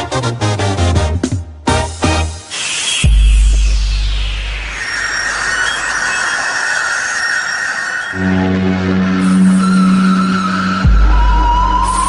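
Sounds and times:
high-pitched screeching hiss: 2.4 - 8.4.

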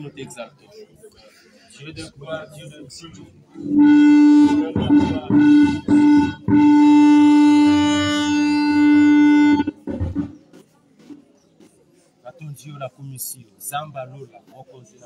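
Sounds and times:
buzzy tone: 3.6 - 10.3.

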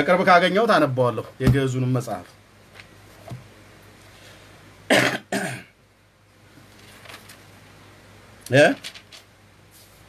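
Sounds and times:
man coughing: 4.9 - 5.7.

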